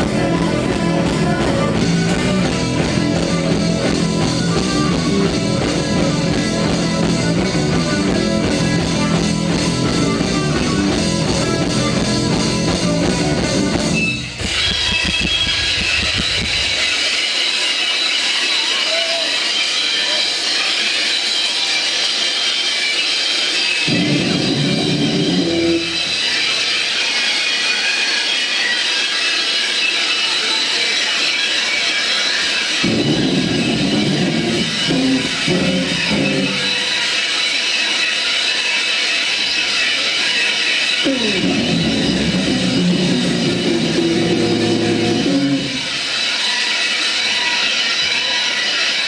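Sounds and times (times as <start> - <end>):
heavy low guitar and bass chords: 0.0 - 16.7, 23.9 - 26.3, 32.8 - 37.0, 41.1 - 46.0
electric guitar noise and feedback: 0.0 - 20.5, 23.5 - 28.8, 31.4 - 49.0.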